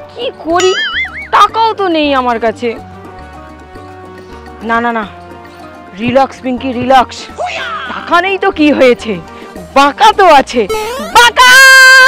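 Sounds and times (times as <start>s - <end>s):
warbling cartoon tone: 10.7s - 11.9s.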